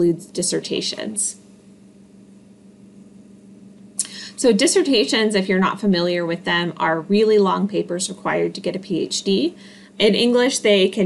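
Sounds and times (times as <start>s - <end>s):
faint microphone hiss: 0.0s - 11.0s
low electrical hum: 0.0s - 11.0s.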